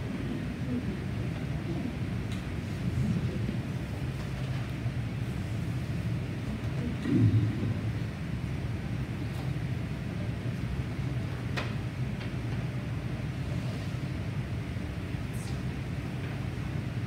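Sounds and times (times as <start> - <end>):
low room noise rumble: 0.0 - 17.0.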